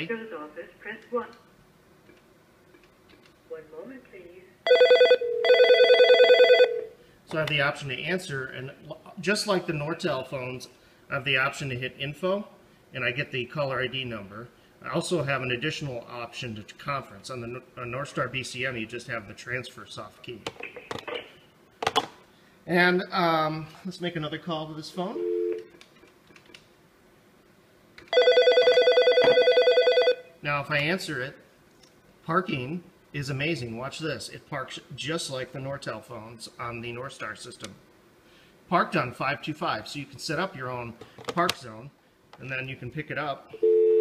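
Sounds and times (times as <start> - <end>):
desk phone warbling ring: 4.7 - 6.9, 28.1 - 30.3, 43.6 - 44.0.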